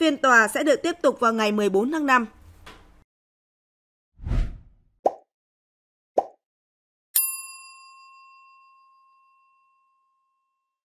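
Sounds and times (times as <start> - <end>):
bell-like ding chime: 7.2 - 10.8.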